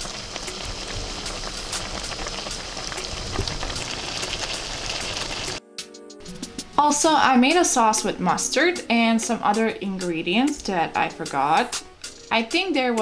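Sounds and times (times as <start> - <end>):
vegetables sizzling in a frying pan: 0.0 - 5.6.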